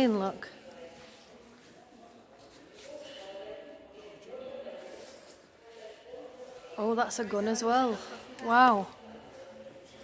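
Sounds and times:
distant murmur of voices: 0:00.4 - 0:10.0.

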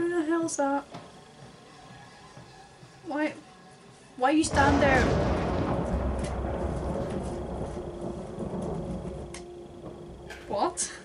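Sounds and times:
low rumbling drone: 0:04.4 - 0:11.0.

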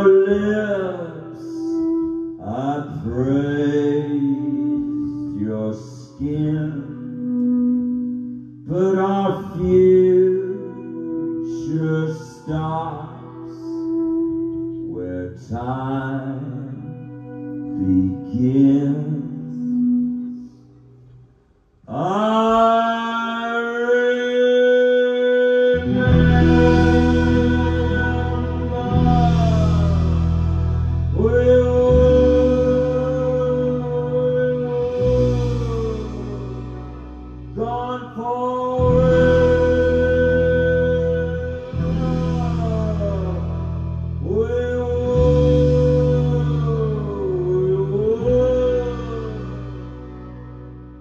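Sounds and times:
man singing drawn-out notes: 0:00.0 - 0:51.0
sustained guitar and keyboard: 0:00.0 - 0:51.0.

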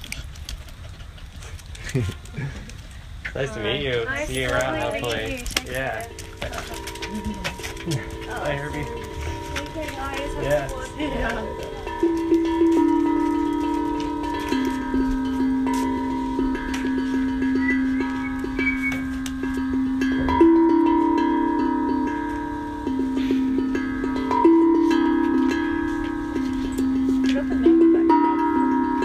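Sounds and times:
tongue drum notes: 0:04.5 - 0:29.0.

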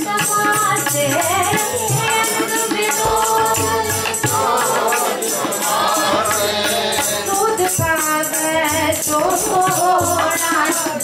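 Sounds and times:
woman singing a hymn: 0:00.0 - 0:04.5, 0:07.3 - 0:11.0
tabla beat: 0:00.0 - 0:11.0
congregation singing: 0:01.6 - 0:11.0.

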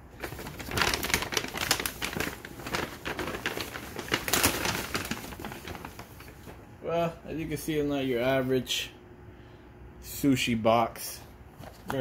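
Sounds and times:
paper bag rustling and crinkling: 0:00.0 - 0:06.7, 0:11.5 - 0:12.0.

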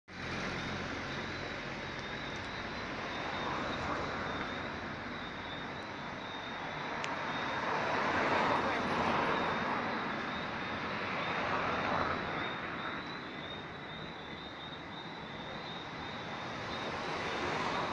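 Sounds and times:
cars passing: 0:00.1 - 0:17.9.

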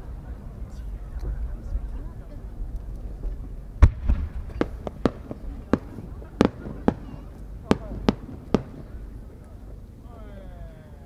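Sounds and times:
firework pops with echo: 0:03.8 - 0:09.5.

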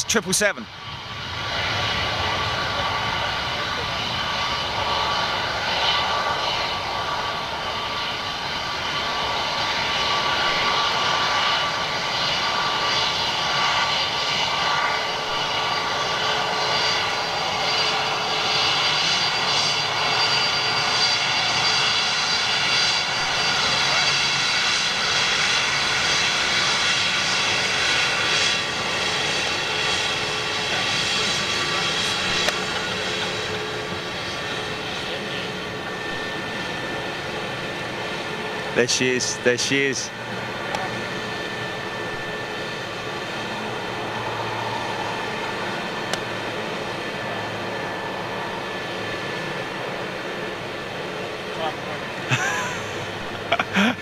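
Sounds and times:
jet engine whine: 0:00.0 - 0:54.0.

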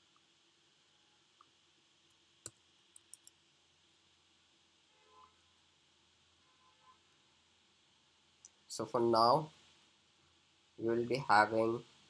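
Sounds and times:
computer clicks: 0:02.4 - 0:03.3.

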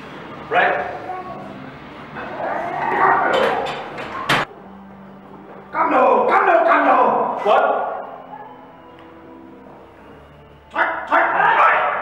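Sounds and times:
men shouting: 0:10.7 - 0:12.0.

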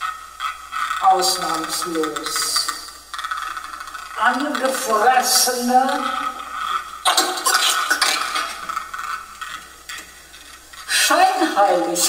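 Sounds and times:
hissing crackly noise: 0:00.0 - 0:12.0.

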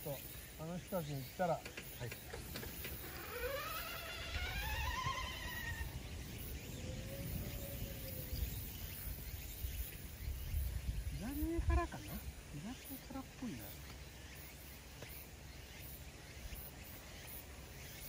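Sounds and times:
wind buffeting microphone: 0:04.2 - 0:12.6.

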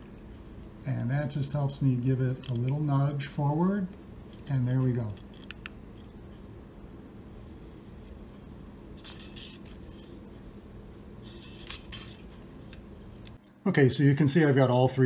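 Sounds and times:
low steady background noise: 0:00.0 - 0:15.0.

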